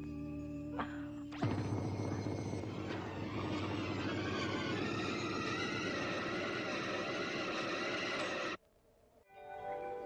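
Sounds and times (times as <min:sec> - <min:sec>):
dense mechanical drone: 0:01.4 - 0:08.6.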